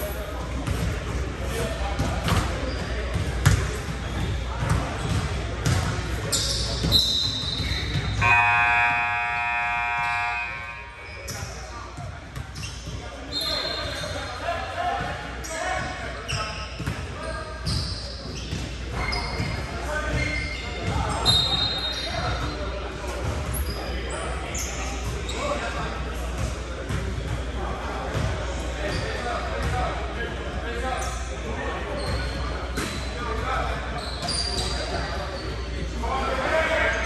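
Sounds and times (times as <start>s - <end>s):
players' voices: 0.0s - 37.0s
sneaker squeaks: 0.6s - 14.4s, 15.1s - 27.5s, 28.1s - 29.8s, 31.0s - 35.9s
basketball bouncing on court: 2.0s - 6.1s, 16.8s - 17.0s
scoreboard horn blast: 8.2s - 11.1s.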